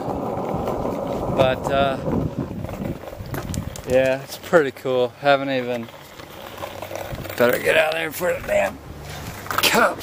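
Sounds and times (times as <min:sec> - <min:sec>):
wind rumbling on microphone: 0:00.0 - 0:04.4, 0:06.9 - 0:09.6.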